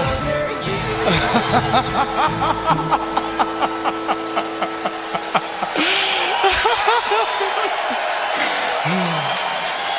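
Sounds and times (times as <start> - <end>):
man laughing maniacally: 0.8 - 8.0.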